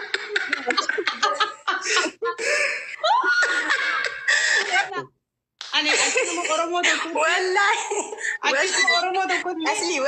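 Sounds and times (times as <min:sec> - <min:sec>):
woman laughing hard: 0:00.3 - 0:05.1.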